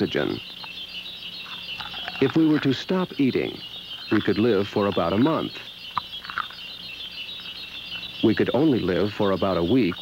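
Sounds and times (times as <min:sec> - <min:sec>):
high-pitched chirping blips: 0:00.0 - 0:10.0.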